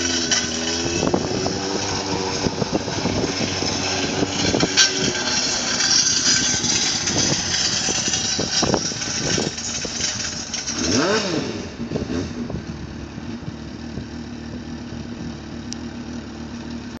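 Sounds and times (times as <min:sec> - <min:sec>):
motorcycle engine revving and idling: 0:00.0 - 0:17.0.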